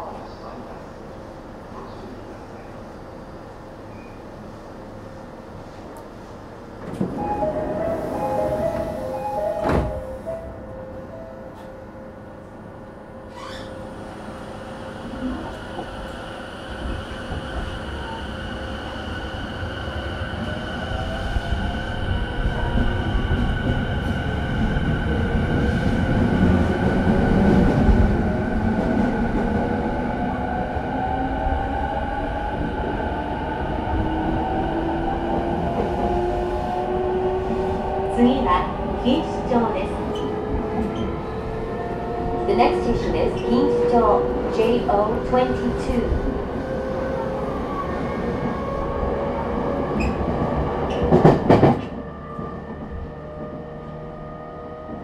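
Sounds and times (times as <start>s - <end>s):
two-tone door chime: 7.2s - 11.8s
train doors knocking shut: 9.5s - 10.0s
train running noise: 35.0s - 47.3s.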